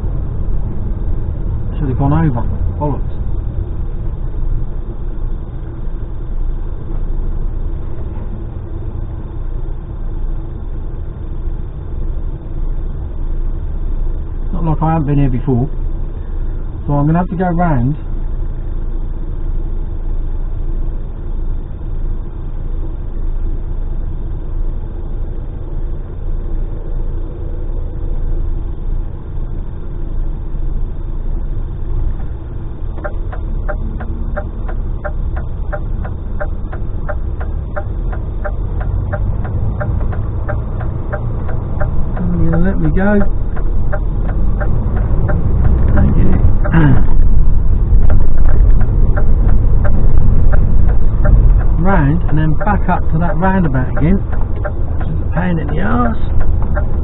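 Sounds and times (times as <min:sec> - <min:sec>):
lorry diesel engine rumbling: 0:00.0 - 0:57.0
regular ticking: 0:31.4 - 0:57.0.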